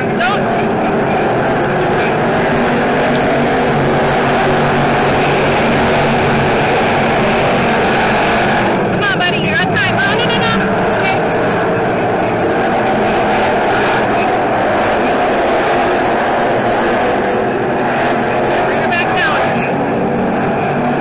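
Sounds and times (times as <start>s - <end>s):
stock car engines racing: 0.0s - 21.0s.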